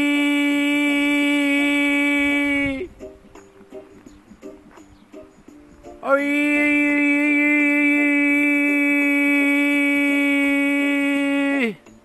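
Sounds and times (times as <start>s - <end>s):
man singing long note: 0.0s - 2.9s, 6.0s - 11.8s.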